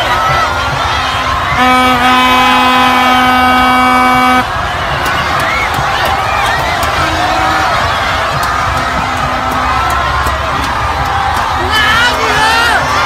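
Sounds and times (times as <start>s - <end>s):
crowd cheering and shouting: 0.0s - 13.0s
long horn blast: 1.2s - 5.4s, 6.8s - 10.6s.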